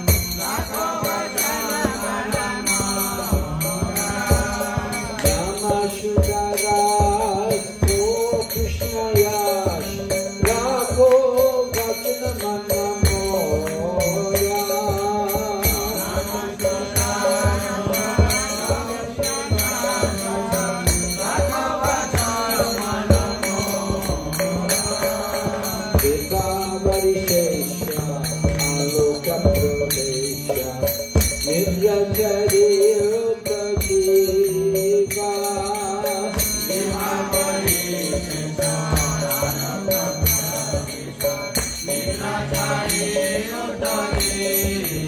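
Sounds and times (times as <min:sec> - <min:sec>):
devotional chanting: 0:00.0 - 0:45.0
drum beating: 0:00.0 - 0:45.0
jingling cymbal-like percussion: 0:00.0 - 0:45.0.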